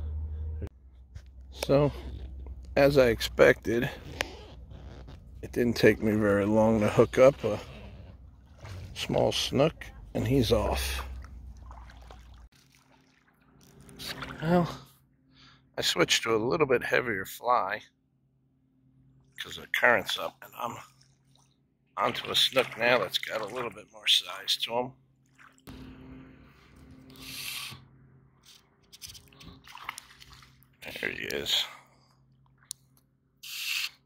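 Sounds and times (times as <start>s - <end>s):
faint low rumble: 0.0s - 11.8s
low hum: 0.0s - 12.5s, 25.7s - 29.6s
fish splashing at surface: 11.0s - 14.4s, 29.6s - 30.7s.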